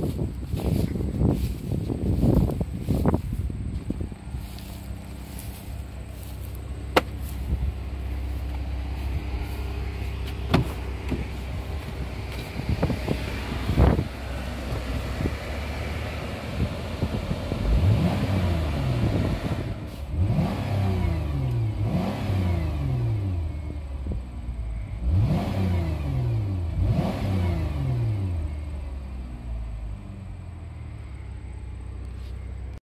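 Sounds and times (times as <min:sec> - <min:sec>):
car engine idling and revving: 0:00.0 - 0:32.8
sharp knocks: 0:06.9 - 0:07.2.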